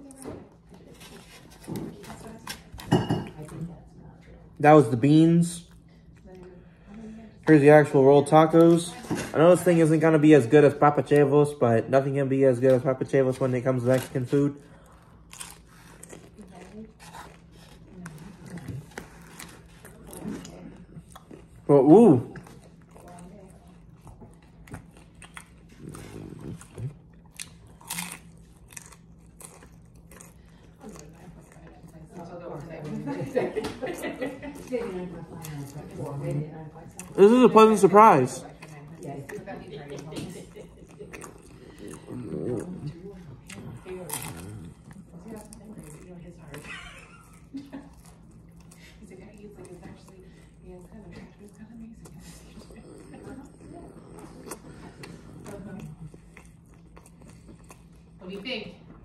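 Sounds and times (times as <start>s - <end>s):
person chewing crunchy food: 13.2s - 32.8s, 34.6s - 58.2s.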